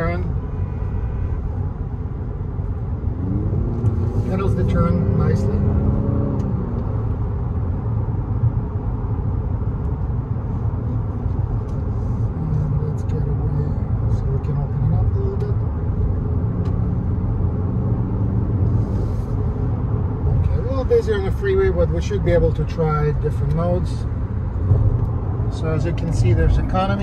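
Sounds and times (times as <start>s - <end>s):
car cabin road rumble: 0.0s - 27.0s.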